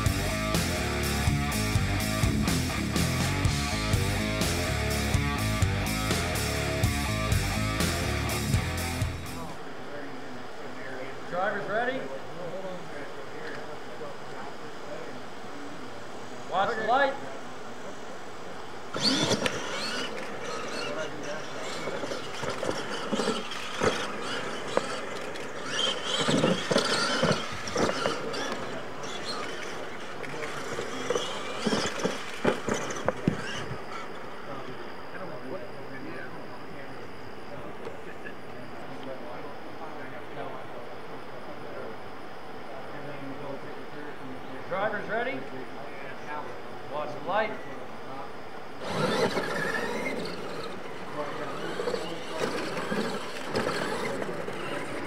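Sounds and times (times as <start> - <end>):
rc truck motors whining: 0.0 - 9.7, 17.8 - 42.2, 47.2 - 55.0.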